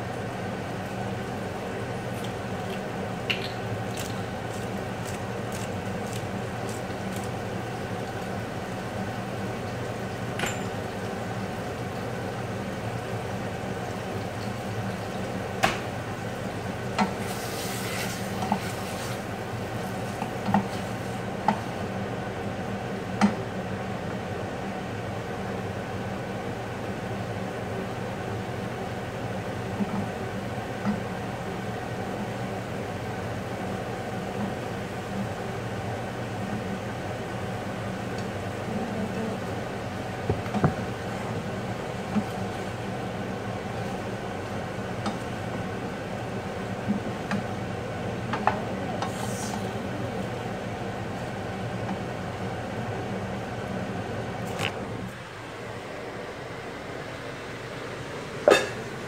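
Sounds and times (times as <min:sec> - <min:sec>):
mechanical kitchen hum: 0:00.0 - 0:59.0
utensils clinking on cookware: 0:10.4 - 0:10.8.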